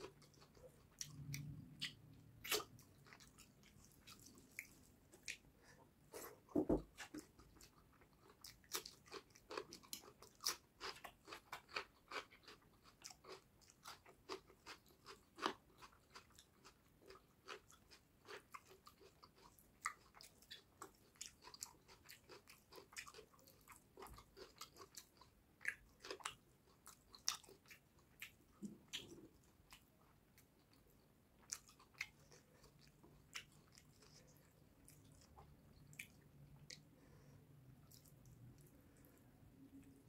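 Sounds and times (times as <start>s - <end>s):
chewing and mouth sounds: 0.0s - 5.7s, 7.0s - 40.0s
thump: 6.5s - 6.9s.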